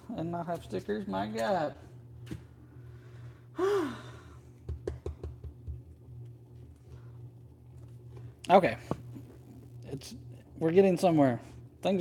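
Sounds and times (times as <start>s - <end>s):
steady low hum: 0.0s - 12.0s
man sighing: 3.6s - 4.4s.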